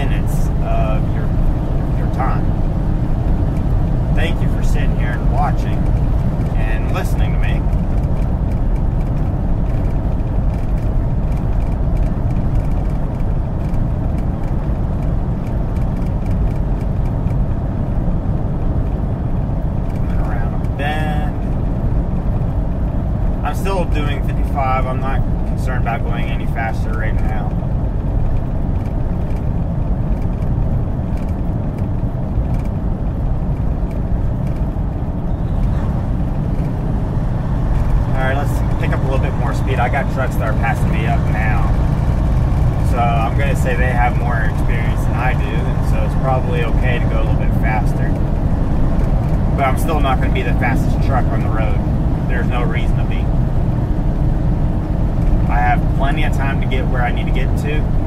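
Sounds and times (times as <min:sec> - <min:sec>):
truck engine and road drone: 0:00.0 - 0:58.0
person speaking: 0:38.0 - 0:41.9, 0:42.8 - 0:48.2, 0:49.5 - 0:53.3.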